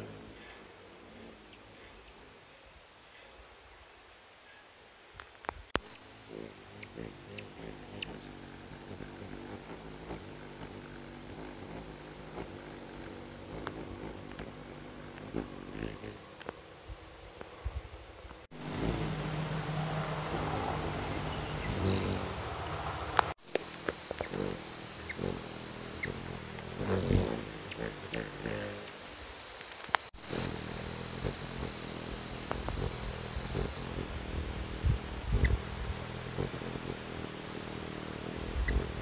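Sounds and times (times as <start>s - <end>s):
hummingbird wings humming: 0.0s - 39.0s.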